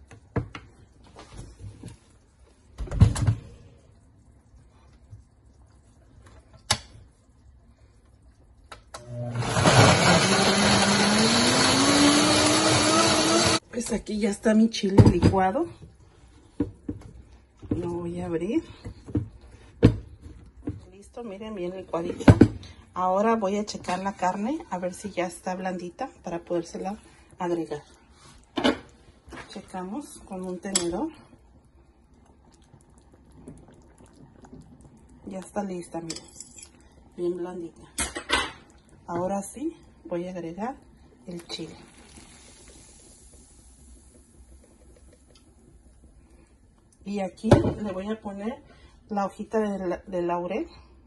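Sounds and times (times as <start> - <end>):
pot of broth bubbling: 0.0 - 9.3, 15.8 - 49.0.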